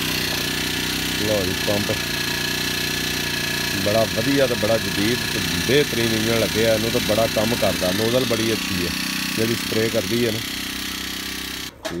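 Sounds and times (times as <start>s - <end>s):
small petrol engine running: 0.0s - 11.7s
man talking: 1.2s - 2.0s, 3.8s - 10.4s.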